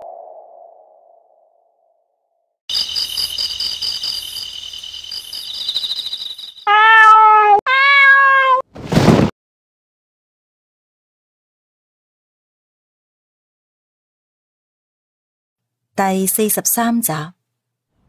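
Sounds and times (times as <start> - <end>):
high steady shrill tone: 2.7 - 6.7
cat meowing: 6.7 - 8.6.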